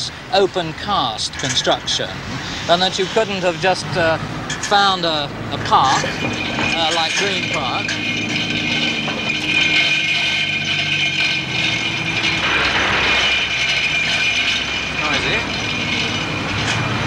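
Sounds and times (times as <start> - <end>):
crane machinery whining: 0.0 - 17.0.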